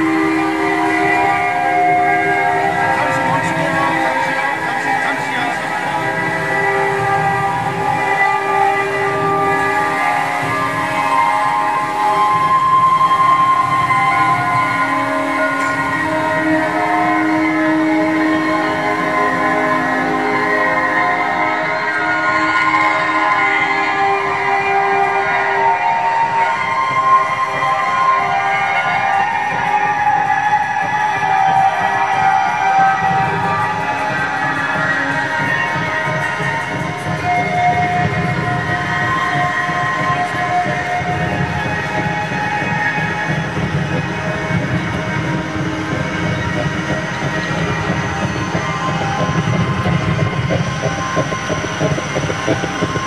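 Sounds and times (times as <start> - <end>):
drone music with horn-like tones: 0.0 - 53.0.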